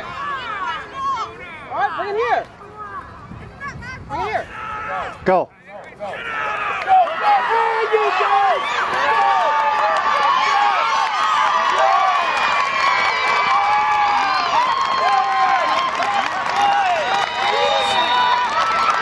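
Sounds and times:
crowd cheering and shouting: 0:00.0 - 0:19.0.

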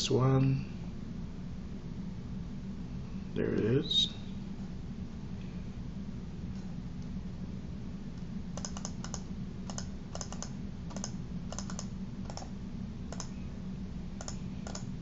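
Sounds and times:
steady low hum: 0:00.0 - 0:15.0
keyboard and mouse clicks: 0:08.6 - 0:12.5, 0:13.1 - 0:13.3, 0:14.2 - 0:14.9.

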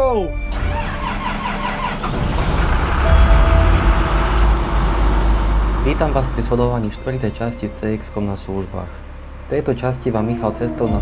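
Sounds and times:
diesel engine starting and running: 0:00.4 - 0:11.0.

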